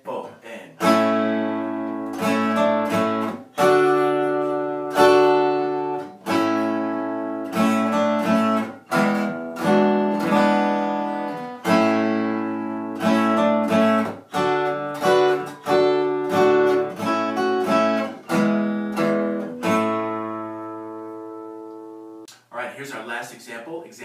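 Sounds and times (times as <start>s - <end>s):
acoustic guitar chords ringing: 0.8s - 22.3s
picked guitar notes: 0.8s - 22.4s.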